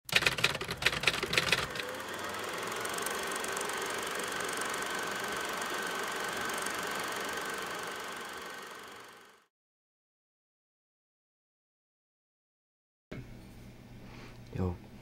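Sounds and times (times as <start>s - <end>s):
typewriter keys clacking: 0.1s - 1.8s.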